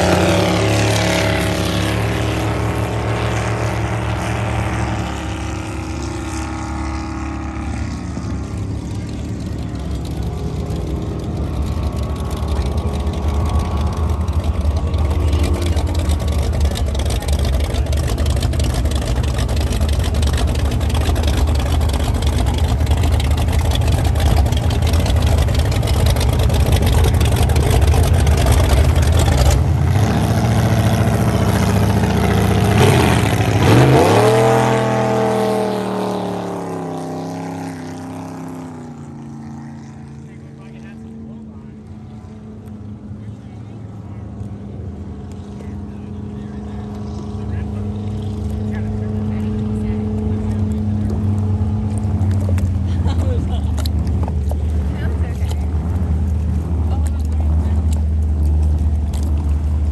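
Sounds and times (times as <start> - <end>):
race boat engine rumbling: 0.0 - 59.9.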